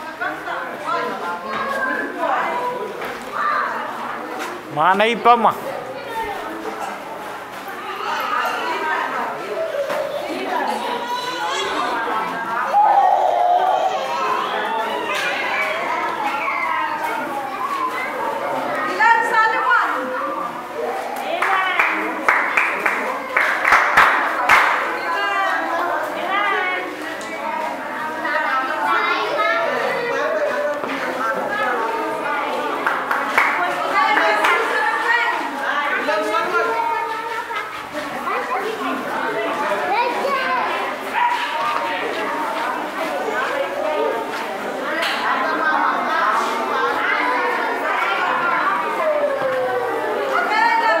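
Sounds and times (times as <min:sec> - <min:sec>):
murmur of chatter: 0:00.0 - 0:51.0
people talking at once: 0:00.0 - 0:51.0.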